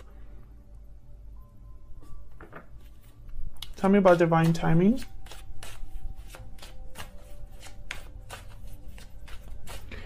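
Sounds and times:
cards being shuffled: 0:03.6 - 0:10.0.

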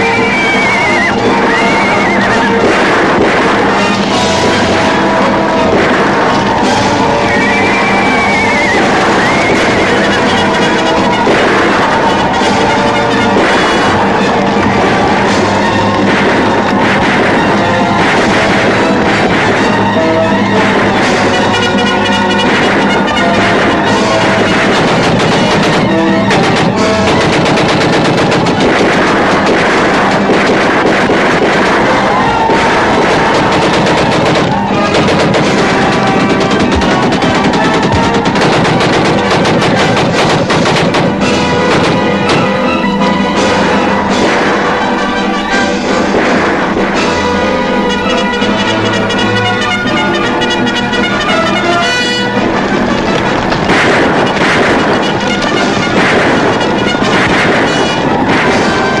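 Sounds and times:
orchestral film music: 0:00.0 - 0:59.0
rapid gunfire: 0:00.0 - 0:59.0.

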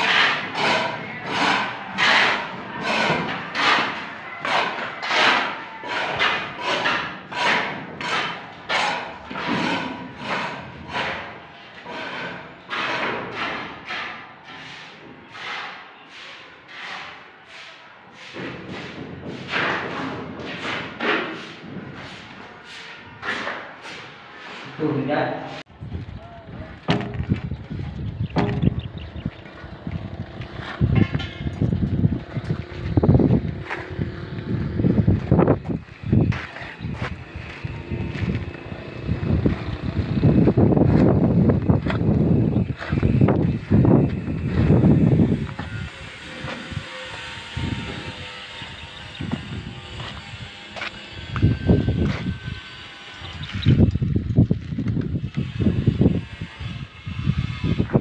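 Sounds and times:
wind buffeting microphone: 0:25.7 - 0:58.0.

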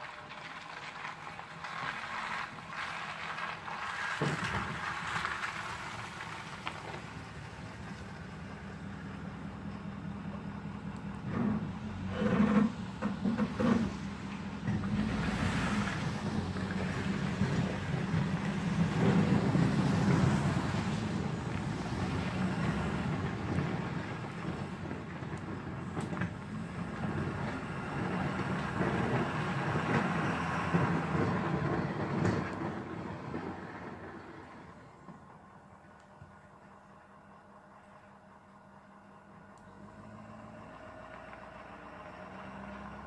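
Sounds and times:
diesel truck engine driving away: 0:00.1 - 0:43.0.

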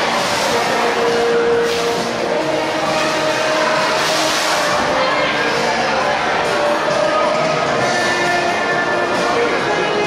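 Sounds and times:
rushing water and splashing: 0:00.0 - 0:07.4
crowd noise: 0:00.0 - 0:10.0.

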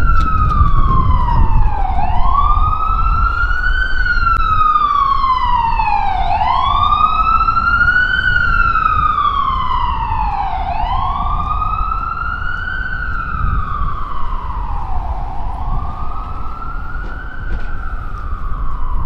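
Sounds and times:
emergency siren wailing: 0:00.0 - 0:19.0
low street rumble: 0:00.0 - 0:19.0.

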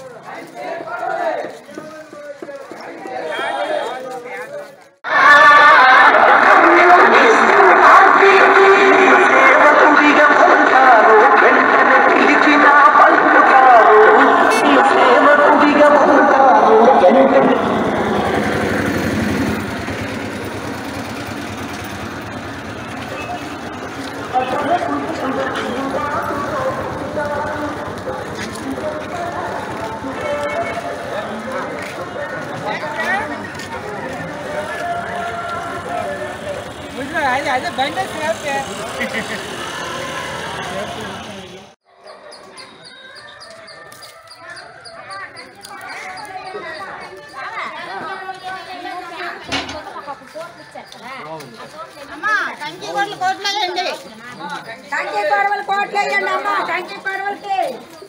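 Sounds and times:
indistinct crowd voices: 0:00.0 - 0:58.0
people talking outdoors: 0:00.0 - 0:58.0
small engine puttering: 0:17.5 - 0:41.8.

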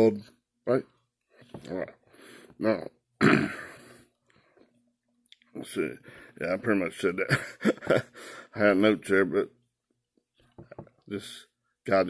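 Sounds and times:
man clearing his throat: 0:03.2 - 0:03.9.

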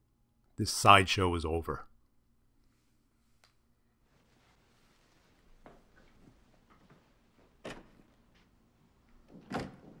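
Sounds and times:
door shutting: 0:07.6 - 0:08.2, 0:09.2 - 0:10.0.

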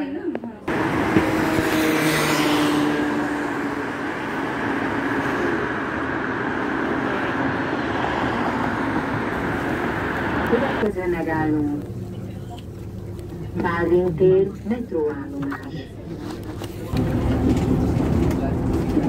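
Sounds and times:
road traffic noise: 0:00.0 - 0:19.0
vehicle passing close: 0:00.7 - 0:11.8.

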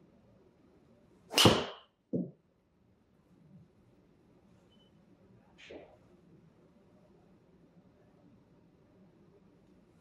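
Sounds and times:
golf driver striking ball: 0:01.3 - 0:01.8
ball hitting impact screen: 0:01.3 - 0:02.4.

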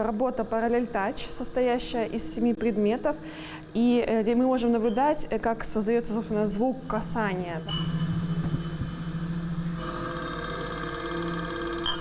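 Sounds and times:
low humming drone: 0:00.0 - 0:12.0
steel ball ringing on glass: 0:06.9 - 0:12.0.

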